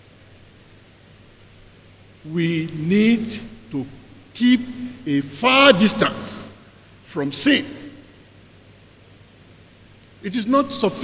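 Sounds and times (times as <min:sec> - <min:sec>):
background hiss with low hum: 0:00.0 - 0:11.0.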